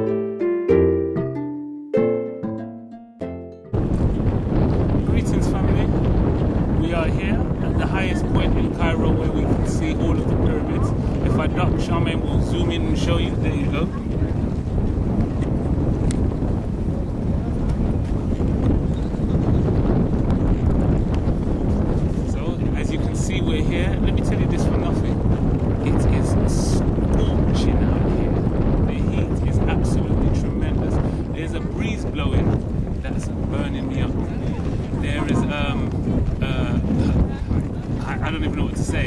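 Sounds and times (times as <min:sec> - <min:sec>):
plucked string music: 0:00.0 - 0:03.8
wind buffeting microphone: 0:03.7 - 0:39.0.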